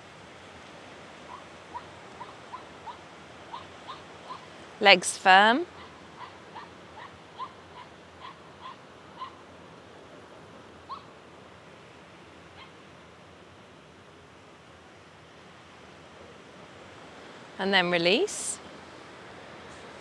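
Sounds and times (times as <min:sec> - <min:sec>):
faint steady hiss: 0:00.0 - 0:20.0.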